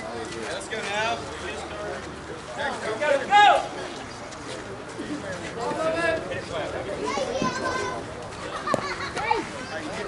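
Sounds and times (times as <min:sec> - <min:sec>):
people calling out and chattering: 0:00.0 - 0:10.0.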